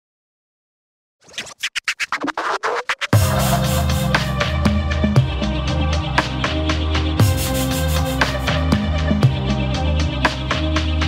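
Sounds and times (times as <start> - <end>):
stuttering scratch effect: 1.2 - 4.4.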